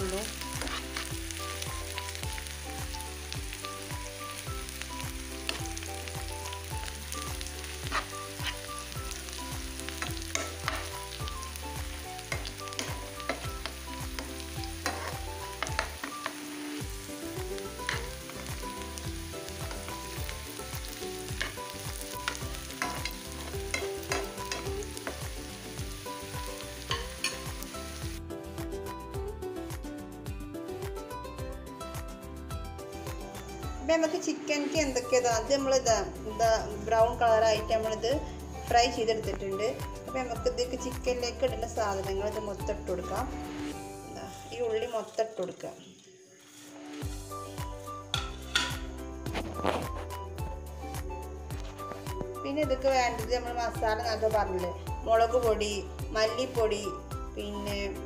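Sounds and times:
onions sizzling in oil: 0.0s - 29.0s, 33.3s - 58.0s
spatula scraping a pan: 0.6s - 1.1s, 7.8s - 8.7s, 48.2s - 50.1s.

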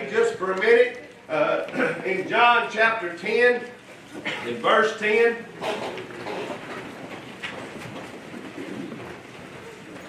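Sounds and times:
room noise: 0.0s - 10.0s.

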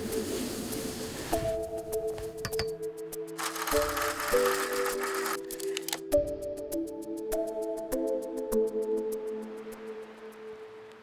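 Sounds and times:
slide projector whirring: 3.4s - 5.5s.

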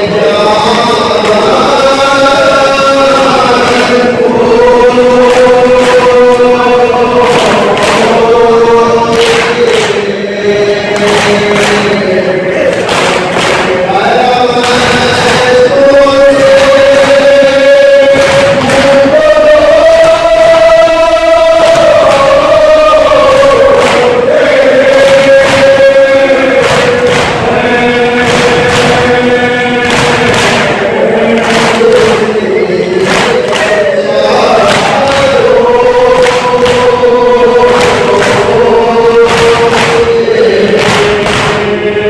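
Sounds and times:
men chanting in unison: 0.0s - 42.0s
hands slapping chests: 7.2s - 8.2s, 9.1s - 10.1s, 10.9s - 12.1s, 12.7s - 13.9s, 14.6s - 15.6s, 18.1s - 19.1s, 23.6s - 27.6s, 28.2s - 29.2s, 29.8s - 32.4s, 33.0s - 33.9s, 34.6s - 35.5s, 36.1s - 41.8s.

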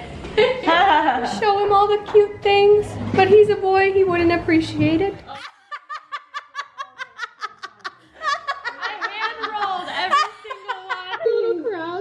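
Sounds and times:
women laughing: 5.3s - 12.0s.

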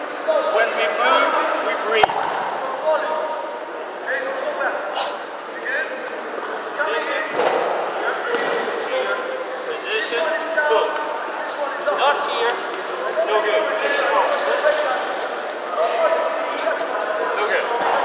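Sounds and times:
people talking in echoing hall: 0.0s - 18.0s.

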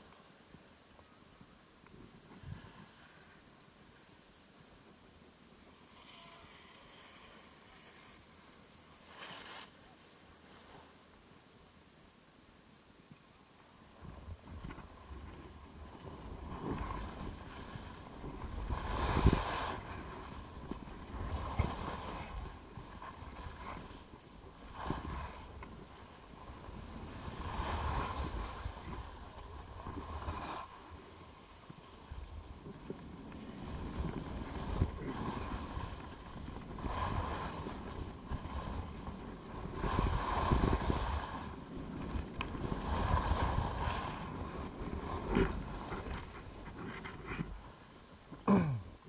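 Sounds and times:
skis scraping on snow: 6.9s - 11.1s, 14.0s - 48.2s
wind rumble on microphone: 13.9s - 48.3s.

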